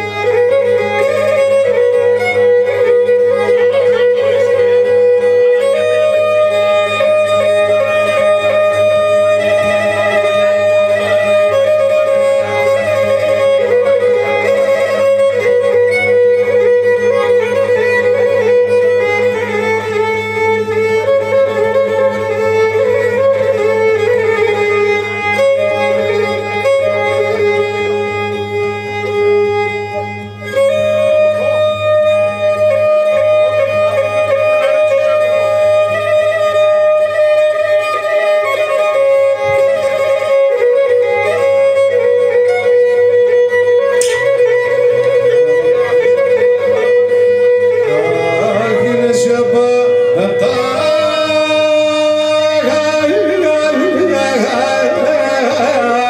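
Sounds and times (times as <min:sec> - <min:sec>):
bowed lyra folk melody: 0:00.0 - 0:56.0.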